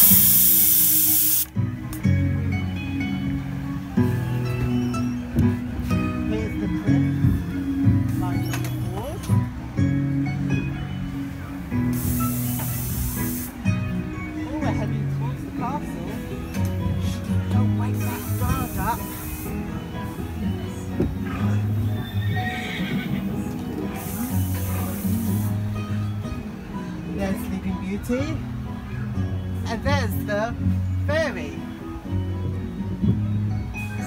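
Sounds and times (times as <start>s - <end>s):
short bursts of hissing: 0.0s - 1.5s, 11.9s - 13.6s, 18.0s - 19.6s, 23.9s - 25.6s
background music playing: 0.0s - 34.0s
horse whinnying: 21.9s - 23.5s.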